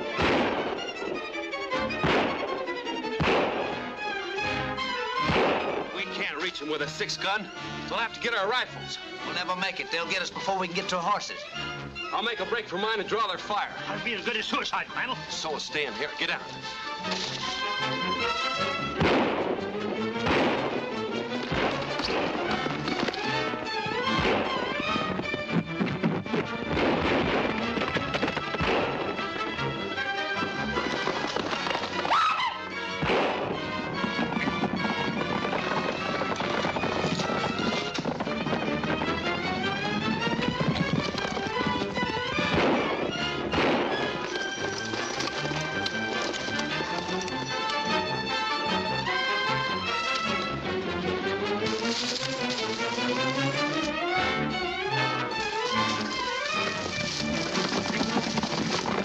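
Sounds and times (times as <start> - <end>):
gunshots: 0.0 - 4.0, 5.2 - 6.3, 18.7 - 25.2, 25.8 - 32.2, 32.9 - 39.0, 42.3 - 47.0
dramatic orchestral music: 0.0 - 59.0.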